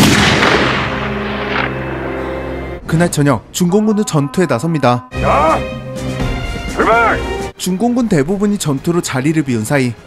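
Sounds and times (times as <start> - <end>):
heavy explosion: 0.0 - 1.1
background music: 0.0 - 10.0.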